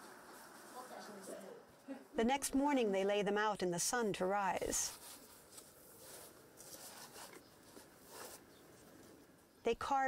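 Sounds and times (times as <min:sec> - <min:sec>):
soft rustles: 0:04.6 - 0:09.3.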